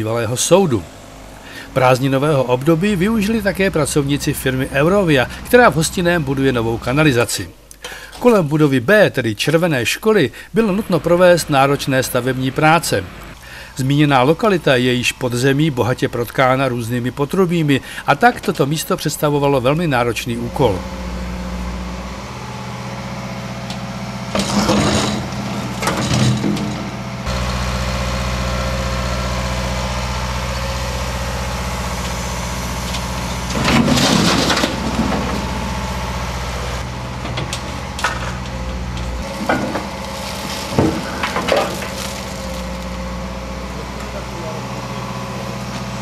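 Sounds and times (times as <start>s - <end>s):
diesel engine running: 0.0s - 8.3s, 10.2s - 46.0s
bucket scraping earth and rubble: 24.3s - 27.0s, 33.4s - 35.7s, 39.2s - 43.1s
loud crashing: 33.4s - 36.2s, 39.2s - 43.1s.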